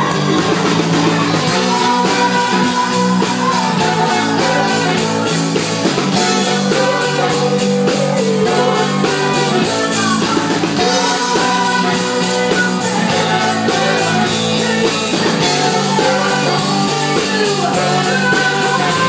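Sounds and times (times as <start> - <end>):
drum kit beat: 0.0 - 19.0
electric guitar: 0.0 - 19.0
person singing: 0.0 - 19.0.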